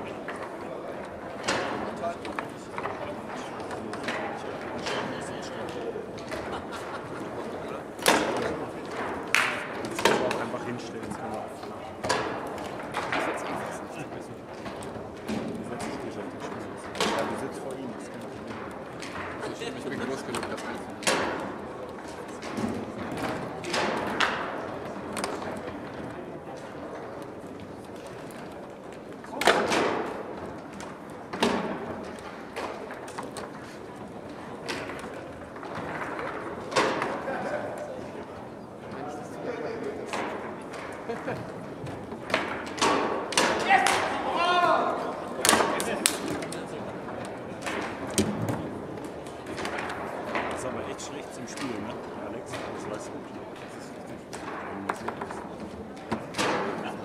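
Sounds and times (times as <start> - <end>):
foosball ball knocks and clacks: 0.0 - 38.2, 39.9 - 44.2, 45.2 - 57.0
murmur of voices: 0.0 - 57.0
foosball rods banging: 7.2 - 11.2, 12.0 - 17.6, 18.3 - 26.0, 29.2 - 37.4, 40.0 - 50.8, 54.2 - 57.0.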